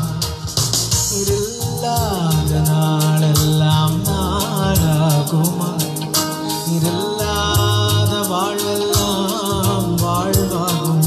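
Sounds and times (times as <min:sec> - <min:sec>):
instrumental backing with beat: 0:00.0 - 0:11.0
man singing into a microphone: 0:00.0 - 0:11.0.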